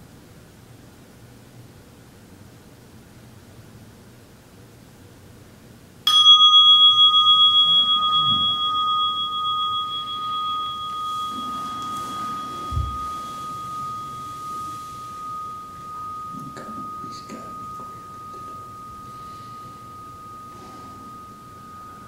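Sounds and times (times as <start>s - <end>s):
meditation bell ringing: 6.1s - 22.0s.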